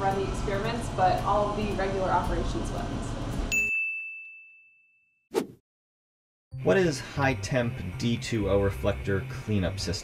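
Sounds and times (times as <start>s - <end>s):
bell ding: 3.5s - 5.1s.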